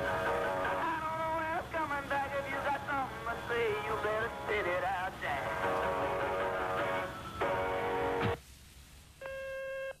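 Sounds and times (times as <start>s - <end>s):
person singing greeting: 0.0s - 5.9s.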